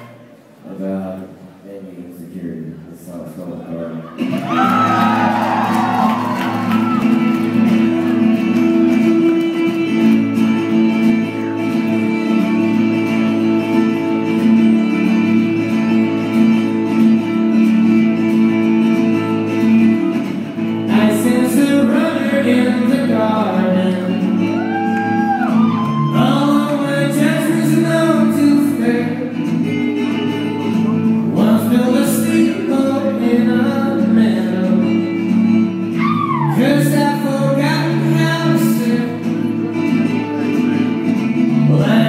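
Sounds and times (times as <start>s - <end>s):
acoustic guitar playing: 3.2s - 42.0s
man singing live: 20.8s - 30.0s, 30.7s - 40.2s, 41.3s - 42.0s.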